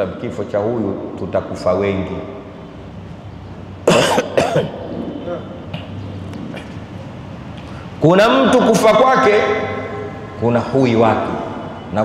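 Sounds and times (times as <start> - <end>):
man coughing: 3.8 - 5.6.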